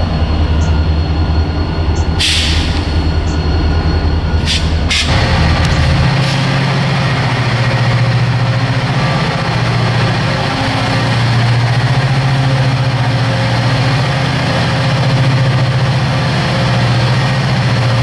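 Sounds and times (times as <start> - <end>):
diesel locomotive engine drone: 0.0 - 18.0.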